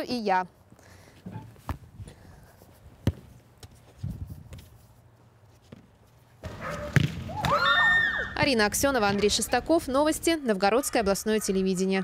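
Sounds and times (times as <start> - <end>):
football kicked: 3.0 - 3.7, 5.7 - 7.6.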